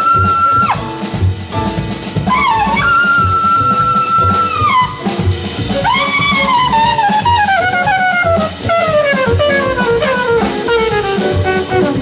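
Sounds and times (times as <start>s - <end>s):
cymbals: 0.0s - 12.0s
double bass: 0.0s - 12.0s
drums: 0.0s - 12.0s
jazz trumpet solo: 0.0s - 12.0s.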